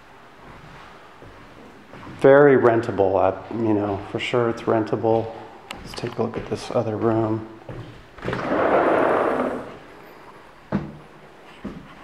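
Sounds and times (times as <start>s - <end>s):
door scraping open: 8.2s - 9.9s.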